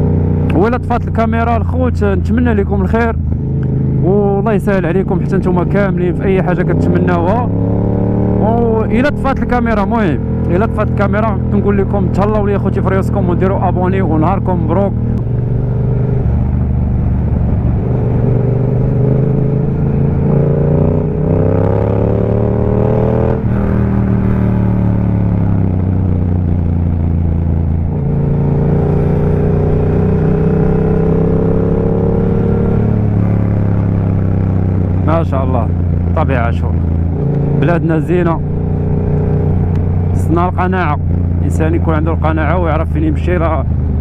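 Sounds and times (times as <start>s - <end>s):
motorcycle engine running: 0.0s - 44.0s.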